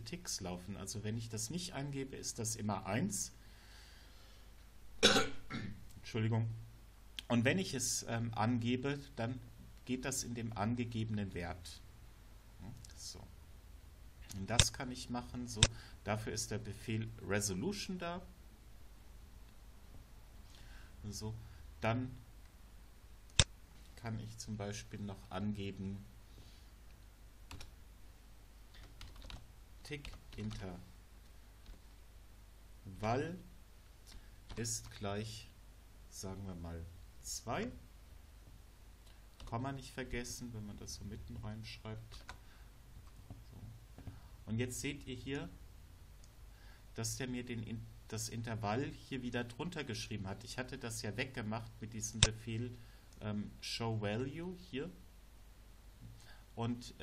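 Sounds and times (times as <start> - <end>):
man coughing: 5.0 - 5.8
computer keyboard keystrokes: 28.7 - 29.4.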